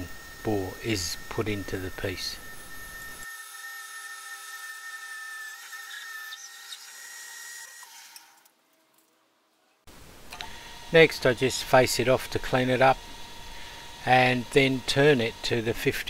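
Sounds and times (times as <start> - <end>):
lathe whine with drill cutting: 0.0 - 8.3, 10.6 - 16.0.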